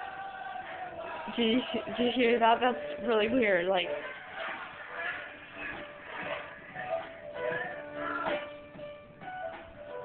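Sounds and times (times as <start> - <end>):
radio playing music and voice: 0.0 - 8.8.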